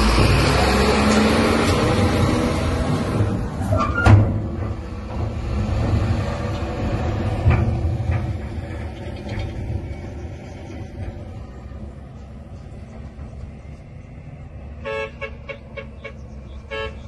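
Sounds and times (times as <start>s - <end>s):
low engine rumble: 0.0s - 17.0s
vehicle horn tooting: 14.8s - 17.0s.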